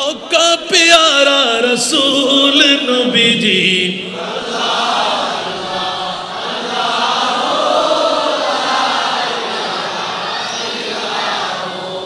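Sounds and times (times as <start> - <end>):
men chanting together: 3.2 - 12.0.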